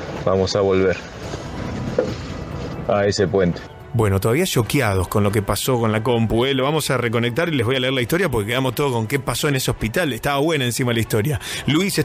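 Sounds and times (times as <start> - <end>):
steady rushing background noise: 0.0 - 12.0
man speaking: 2.9 - 12.0.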